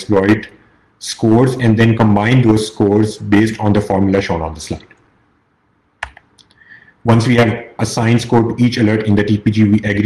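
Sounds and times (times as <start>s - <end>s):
keyboard or mouse clicks: 6.0s - 6.6s.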